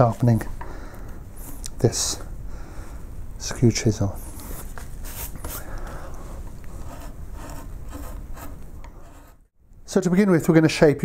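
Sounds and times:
chisel scraping wood: 4.2s - 9.5s.

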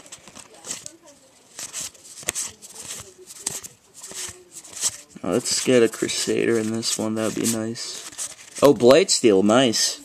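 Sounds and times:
cards sliding rustles: 0.0s - 9.0s.

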